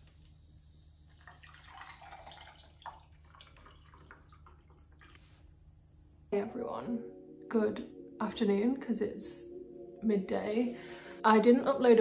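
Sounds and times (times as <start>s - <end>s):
water poured into a glass: 1.1s - 5.3s.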